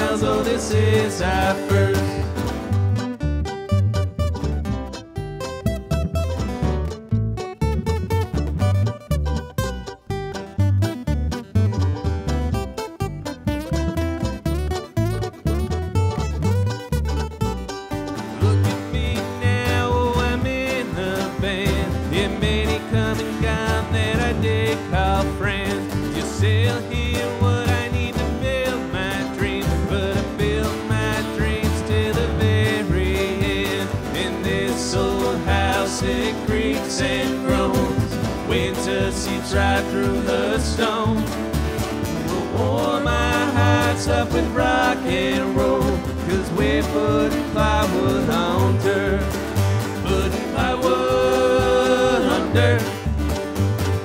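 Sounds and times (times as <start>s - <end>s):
acoustic guitar: 0.0s - 54.0s
mandolin: 0.0s - 54.0s
upright bass plucking: 0.0s - 54.0s.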